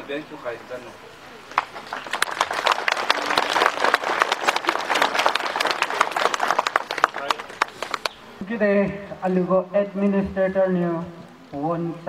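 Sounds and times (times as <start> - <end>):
crowd applauding: 1.5 - 8.2.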